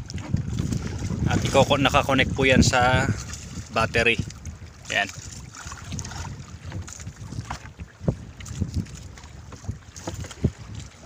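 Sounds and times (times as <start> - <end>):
wind rumbling on microphone: 0.0 - 11.0.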